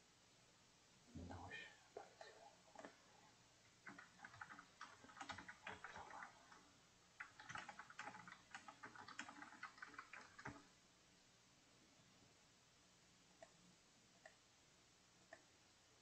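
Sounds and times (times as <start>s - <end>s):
keyboard typing clicks: 3.8s - 6.6s, 7.2s - 10.6s.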